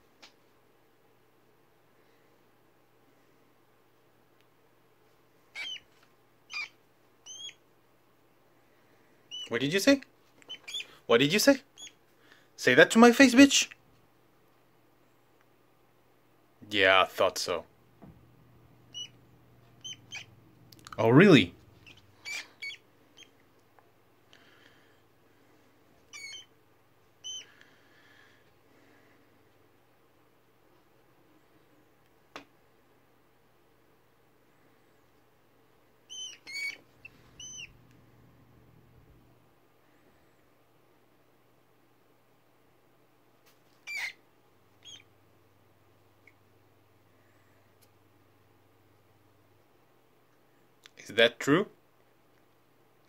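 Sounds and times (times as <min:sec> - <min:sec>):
rat squeaking: 0:05.5 - 0:05.9, 0:06.5 - 0:07.6, 0:09.3 - 0:09.5, 0:10.4 - 0:11.0, 0:11.7 - 0:12.0, 0:18.8 - 0:20.4, 0:21.7 - 0:23.4, 0:26.1 - 0:26.6, 0:27.2 - 0:27.5, 0:36.1 - 0:37.8, 0:43.8 - 0:44.2, 0:44.8 - 0:45.2.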